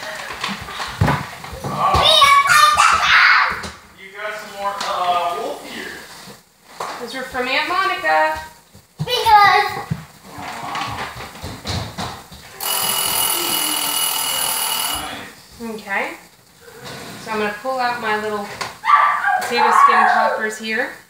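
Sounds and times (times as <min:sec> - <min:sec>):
kitchen timer tone: 0:12.6 - 0:15.3.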